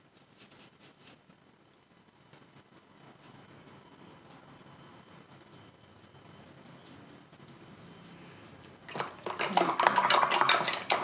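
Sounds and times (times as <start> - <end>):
painting tools clattering: 8.9 - 11.0.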